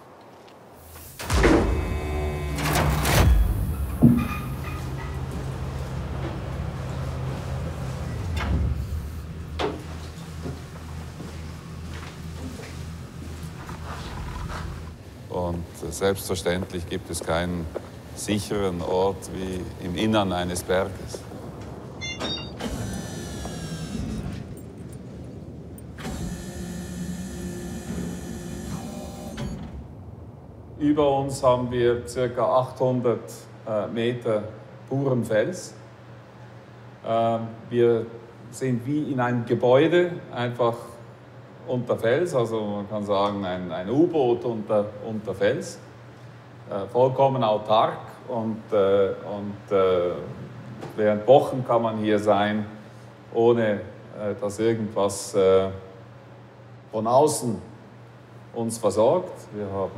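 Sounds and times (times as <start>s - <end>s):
low steady hum: 0.0s - 59.9s
steel door scraping open: 0.8s - 10.4s, 12.8s - 15.0s, 22.0s - 24.6s
metallic door clunk: 1.0s - 10.5s, 22.0s - 23.0s.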